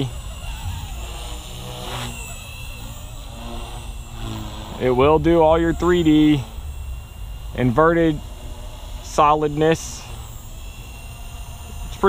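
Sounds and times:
rc helicopter whirring hum: 0.0 - 12.0.

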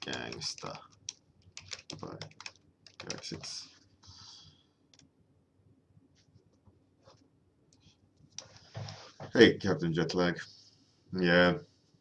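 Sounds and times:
keyboard typing: 0.0 - 3.6.

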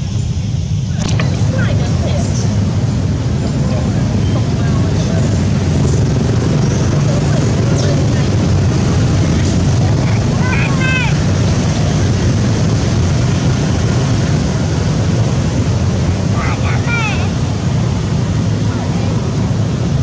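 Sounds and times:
loud low rumble: 0.0 - 20.0.

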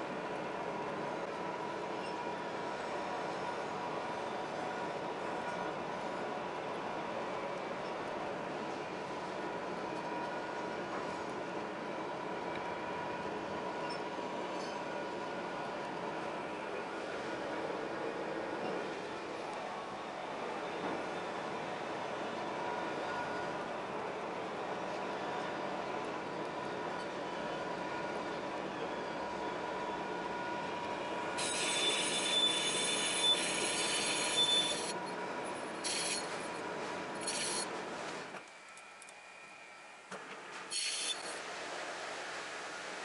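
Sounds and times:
metal-on-metal squeal: 31.4 - 34.9, 40.7 - 41.3.

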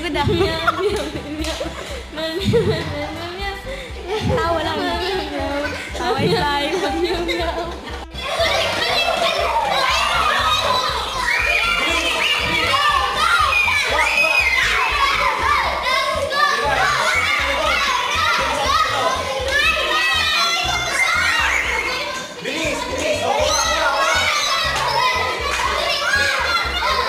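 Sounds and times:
children shouting: 8.1 - 27.0.

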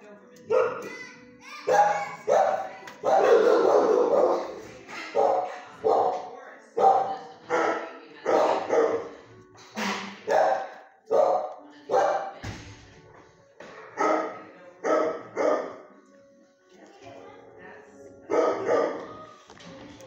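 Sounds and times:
dog barking: 0.5 - 0.9, 1.6 - 9.2, 10.2 - 12.4, 14.0 - 15.9, 18.3 - 19.1.

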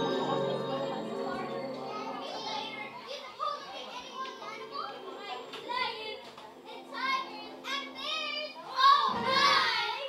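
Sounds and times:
children's voices in a hall: 0.0 - 10.0
music: 0.0 - 10.0.

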